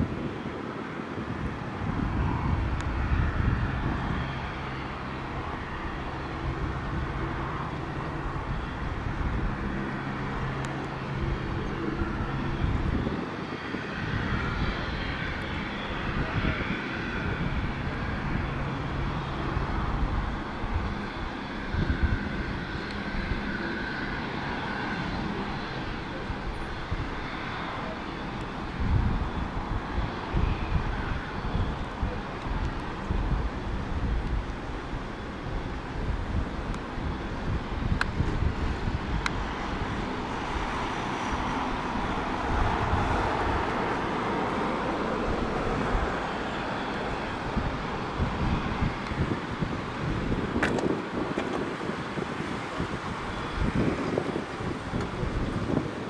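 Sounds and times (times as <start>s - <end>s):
aircraft engine rumble: 0.0s - 56.0s
wind on microphone: 0.0s - 56.0s.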